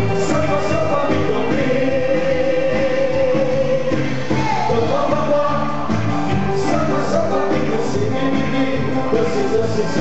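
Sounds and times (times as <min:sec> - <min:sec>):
live pop music: 0:00.0 - 0:10.0.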